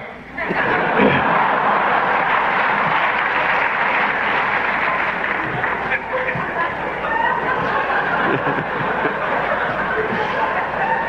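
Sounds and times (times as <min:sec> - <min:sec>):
audience laughing: 0:00.4 - 0:11.0
audience applauding: 0:00.5 - 0:11.0.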